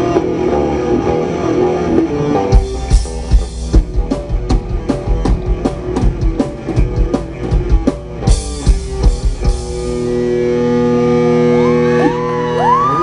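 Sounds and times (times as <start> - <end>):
heavy metal band playing: 0.0 - 12.9
rising whine: 0.0 - 13.0.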